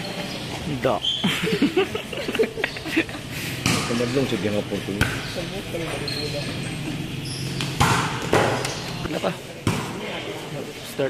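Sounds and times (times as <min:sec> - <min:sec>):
basketball bouncing on concrete: 0:05.0 - 0:06.1, 0:07.5 - 0:08.8, 0:09.6 - 0:10.0.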